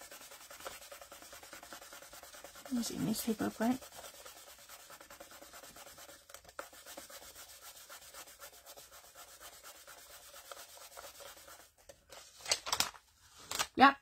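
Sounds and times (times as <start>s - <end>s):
fingers rubbing paper: 0.0s - 11.8s
paper rustle: 11.0s - 13.8s.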